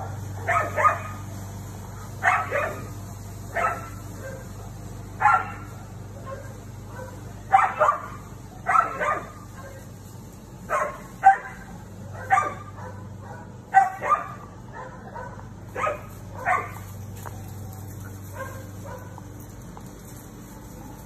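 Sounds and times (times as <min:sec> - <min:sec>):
dog barking: 0:00.0 - 0:01.2, 0:02.2 - 0:02.9, 0:03.5 - 0:09.9, 0:10.7 - 0:16.9, 0:17.6 - 0:19.3.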